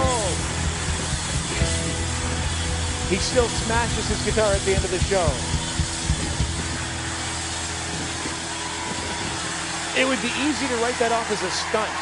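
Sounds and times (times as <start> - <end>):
distorted electric guitar: 0.0 - 10.0
live rock music: 0.0 - 11.8.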